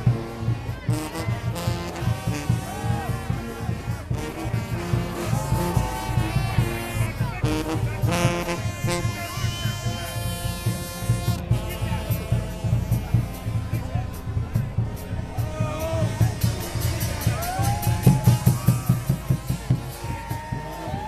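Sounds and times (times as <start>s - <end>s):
brass band playing march: 0.0s - 21.0s
crowd voices: 0.0s - 21.0s
steady drum beat: 0.0s - 21.0s.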